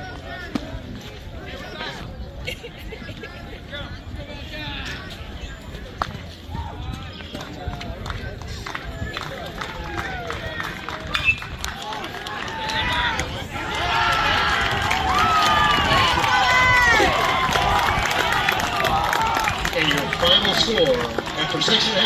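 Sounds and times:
crowd shouting and cheering: 5.7s - 22.0s.

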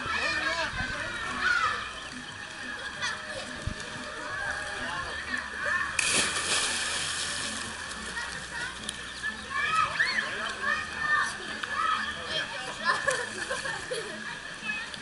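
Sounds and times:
pool water splash: 1.3s - 15.0s.

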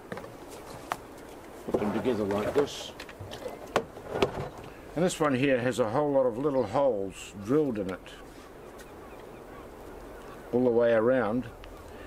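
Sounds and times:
faint rustling: 7.6s - 10.6s.

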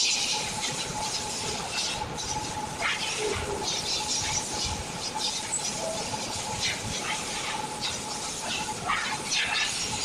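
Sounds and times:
faint machine whine: 0.0s - 10.0s.

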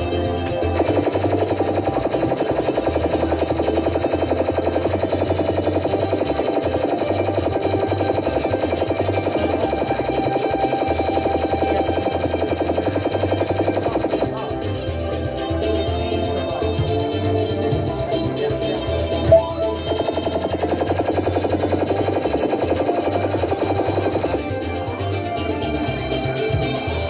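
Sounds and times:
electronic fruit machine tune: 0.0s - 14.4s, 19.1s - 24.7s
rapid repeated beeps: 0.6s - 14.4s, 19.2s - 24.6s.

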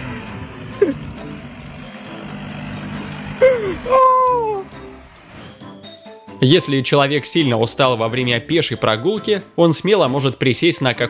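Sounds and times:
car engine running: 0.0s - 6.4s
background music: 0.0s - 11.0s
person crying out: 0.8s - 1.1s, 3.4s - 4.7s.

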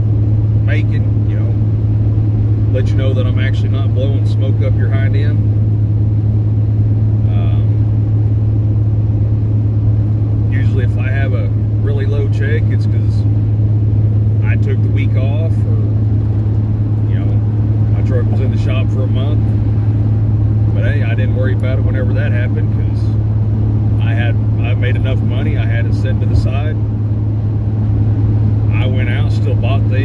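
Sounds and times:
diesel truck engine drone: 0.0s - 30.0s
road noise inside cab: 0.0s - 30.0s.

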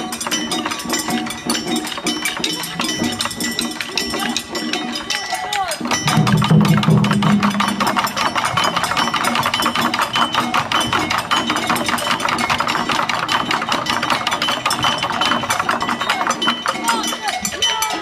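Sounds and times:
drummers calling out: 0.0s - 18.0s
sharp clicking drum strokes: 0.0s - 18.0s.

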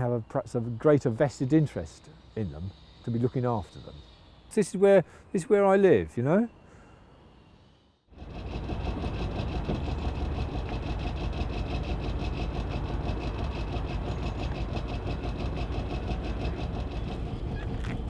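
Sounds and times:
boat engine running: 8.2s - 18.0s.

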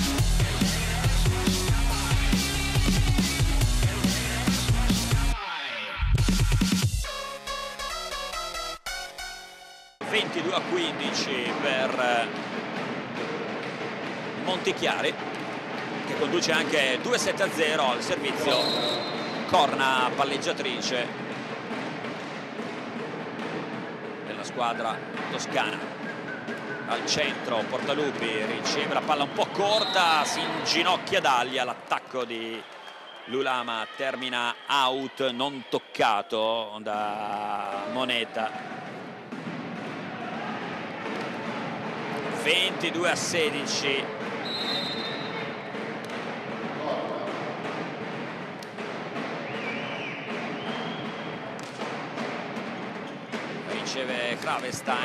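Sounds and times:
crowd din in sports hall: 0.0s - 6.9s, 10.0s - 55.0s
short high whistle: 18.5s - 19.4s, 44.4s - 45.3s
crowd hubbub: 37.7s - 55.0s
volleyball bouncing on wooden floor: 50.4s - 53.7s.

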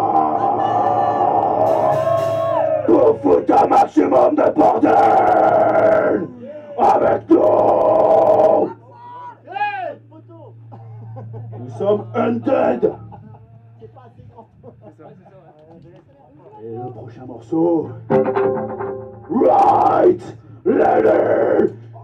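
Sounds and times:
distorted amplified sound: 0.0s - 8.8s, 10.0s - 14.9s, 17.1s - 22.0s
people shouting and yelling: 0.0s - 10.1s, 19.2s - 22.0s.

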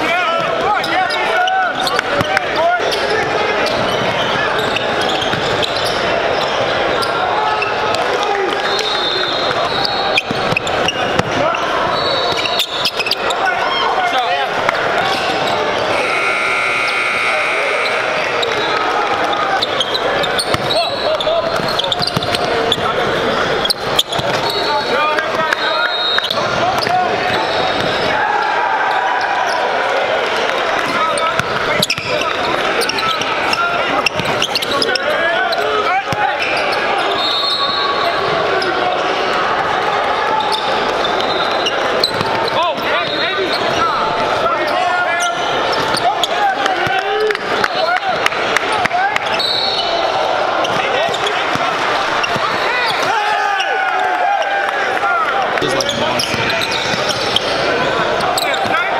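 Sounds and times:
crowd and player voices: 0.0s - 58.9s
high-pitched shoe squeaks: 15.1s - 22.8s.

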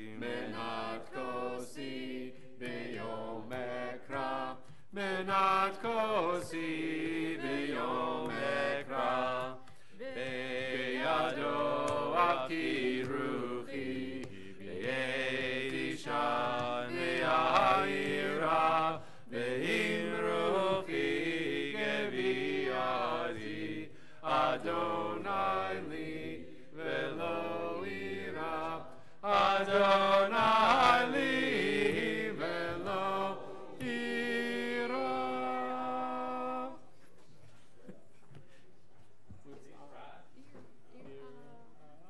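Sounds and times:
voices singing a prayer melody: 0.0s - 37.0s.

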